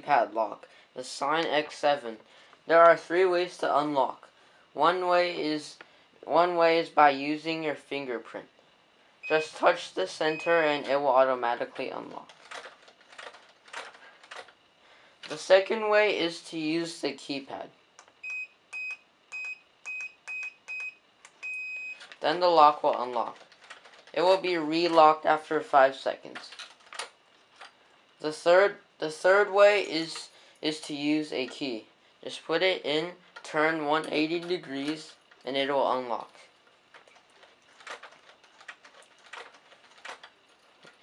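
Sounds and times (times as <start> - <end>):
keypad beeping: 18.2 - 22.0.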